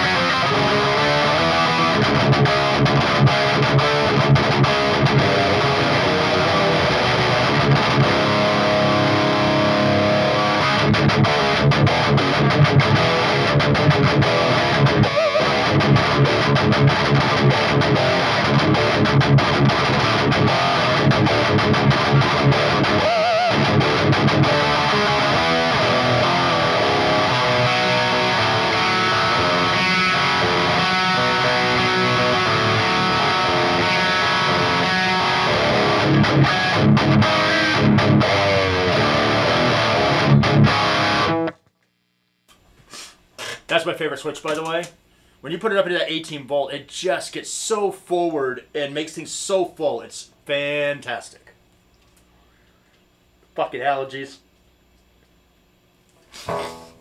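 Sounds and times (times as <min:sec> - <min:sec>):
distorted electric guitar riffing: 0:00.0 - 0:41.6, 0:56.3 - 0:57.0.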